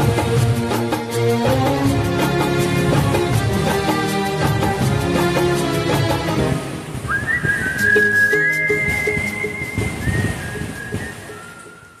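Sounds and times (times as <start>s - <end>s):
instrumental backing track: 0.0s - 11.6s
whistled melody: 7.0s - 12.0s.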